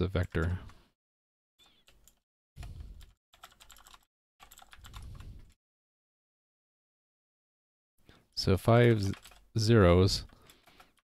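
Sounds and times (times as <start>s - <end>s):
typing on computer keyboard: 3.0s - 5.2s, 8.8s - 9.5s, 10.2s - 11.0s.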